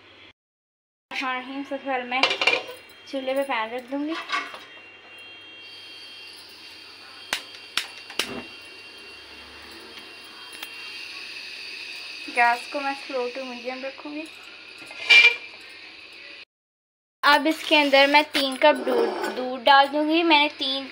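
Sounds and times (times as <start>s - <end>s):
gas burner hissing: 4.4s - 16.4s, 17.3s - 20.9s
spark lighter clicking: 7.3s - 8.3s.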